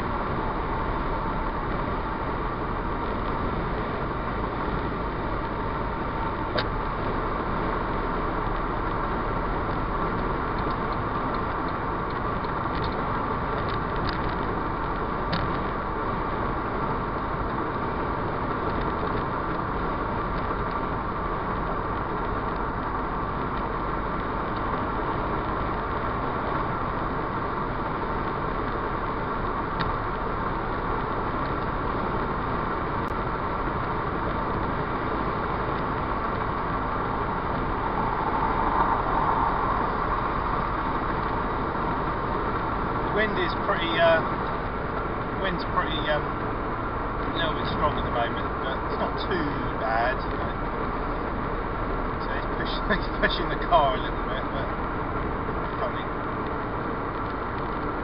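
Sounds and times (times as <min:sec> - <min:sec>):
car road and tyre noise: 0:00.0 - 0:58.0.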